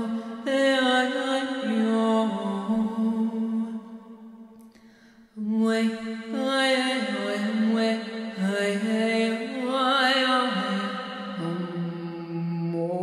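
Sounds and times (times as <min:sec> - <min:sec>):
woman singing wordless chant: 0:00.0 - 0:04.5, 0:05.4 - 0:13.0.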